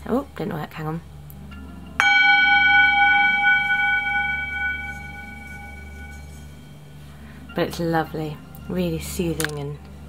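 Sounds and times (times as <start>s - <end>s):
singing bowl ringing: 1.5s - 9.3s.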